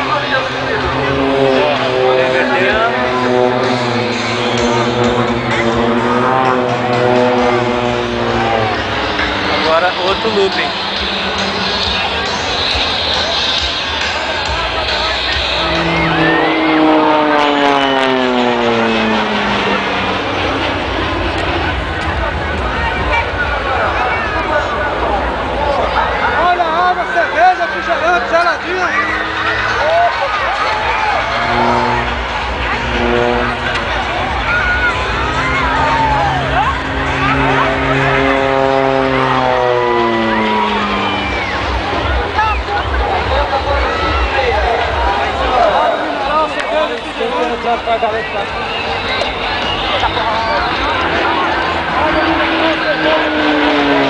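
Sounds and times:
propeller plane flying past: 0:00.0 - 0:54.0
spectators chattering: 0:00.0 - 0:54.0.

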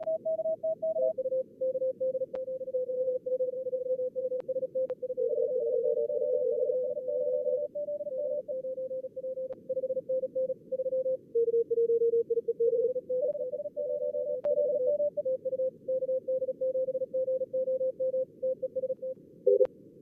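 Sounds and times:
morse code tones: 0:00.0 - 0:19.7.

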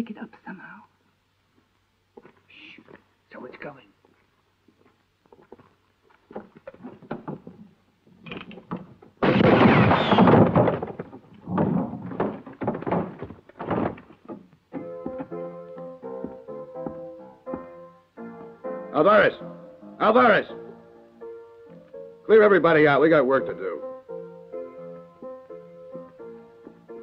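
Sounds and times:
knocks and thuds: 0:06.3 - 0:17.7
hard hits: 0:08.6 - 0:14.4
loud blast: 0:09.2 - 0:10.8
music: 0:14.7 - 0:27.0.

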